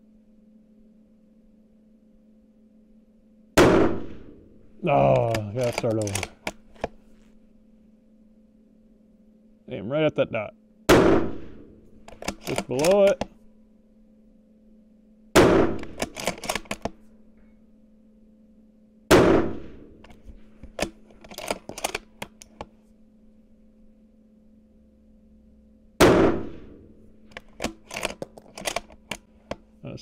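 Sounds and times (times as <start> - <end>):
rifle shots echoing: 3.6 - 6.4, 10.9 - 13.2, 15.4 - 16.8, 19.1 - 21.0, 26.0 - 28.7
rifle bolt clicks: 5.0 - 7.0, 11.9 - 13.4, 15.6 - 17.1, 20.0 - 22.7, 27.2 - 29.6.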